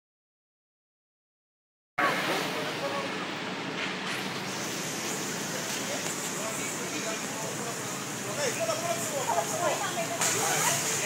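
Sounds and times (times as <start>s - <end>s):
steady traffic hum: 2.0s - 11.0s
faint voices of people: 5.4s - 11.0s.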